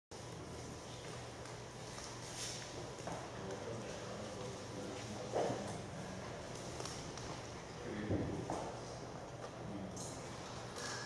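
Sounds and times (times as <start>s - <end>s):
steady low hum: 0.1s - 11.0s.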